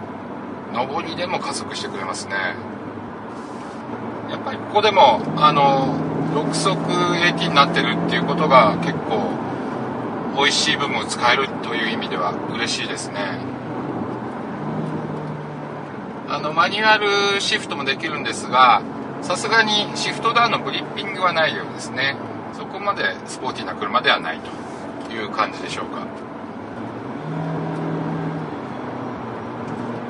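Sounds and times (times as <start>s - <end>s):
car engine hum: 0.0s - 30.0s
road noise: 0.0s - 30.0s.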